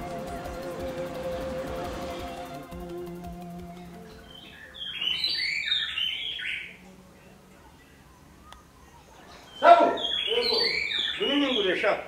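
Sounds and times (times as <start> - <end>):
background music with held notes: 0.0 - 5.4
bird chirping: 0.0 - 12.0.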